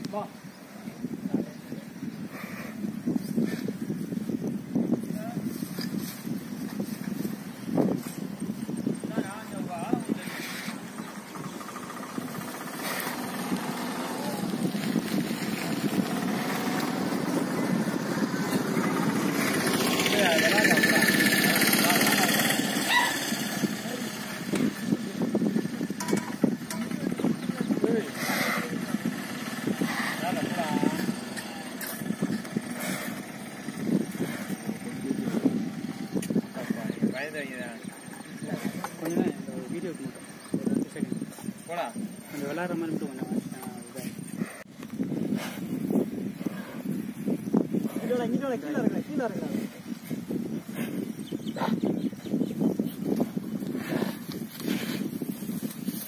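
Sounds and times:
motor vehicle engine: 10.0 - 41.1.

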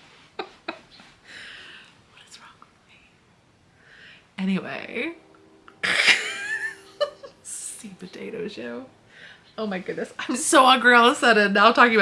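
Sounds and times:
intake of breath: 1.2 - 2.0, 3.7 - 4.4, 9.0 - 9.5.

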